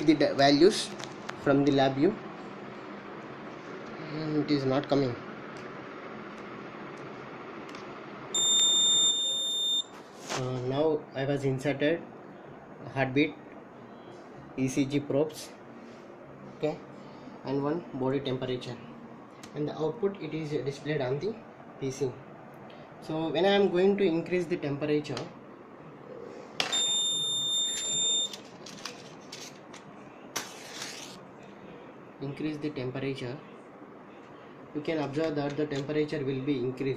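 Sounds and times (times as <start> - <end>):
high-pitched buzzer beep: 8.4 - 9.9, 26.7 - 28.4.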